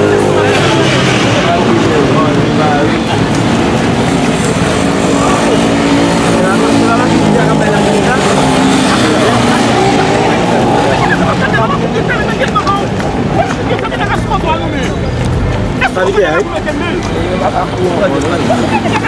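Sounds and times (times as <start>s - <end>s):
people's voices: 0.0s - 19.0s.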